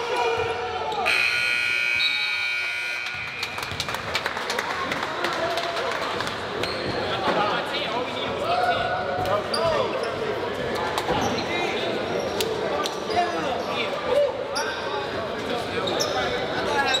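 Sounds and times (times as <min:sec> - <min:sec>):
echoing chatter of people: 0:00.0 - 0:17.0
sneakers squeaking: 0:06.6 - 0:07.3, 0:09.2 - 0:10.5, 0:14.6 - 0:17.0.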